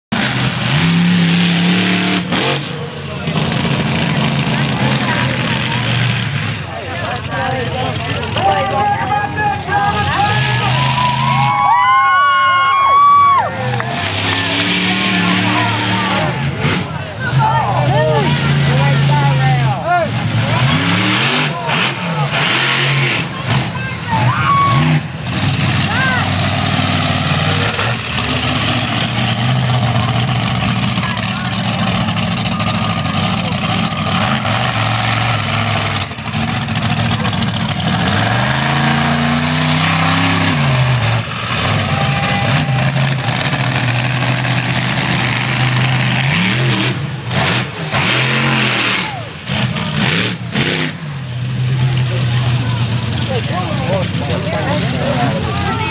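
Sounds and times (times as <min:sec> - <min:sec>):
monster truck engine revving: 0:00.0 - 0:55.9.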